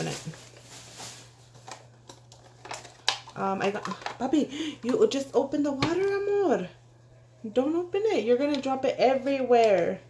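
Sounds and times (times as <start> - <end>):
plastic crinkling: 0.0 - 4.4.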